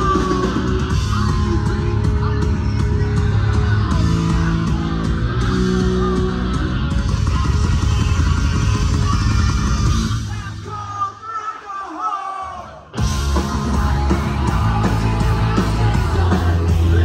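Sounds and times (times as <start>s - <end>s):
electric guitars: 0.0s - 10.4s, 13.0s - 17.0s
bass guitar: 0.0s - 10.7s, 12.9s - 17.0s
drums: 0.0s - 17.0s.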